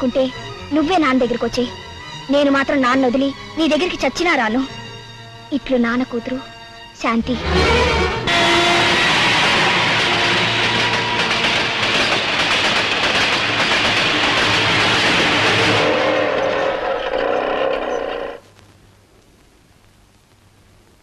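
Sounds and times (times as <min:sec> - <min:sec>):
train rushing over rails: 0:07.2 - 0:18.4.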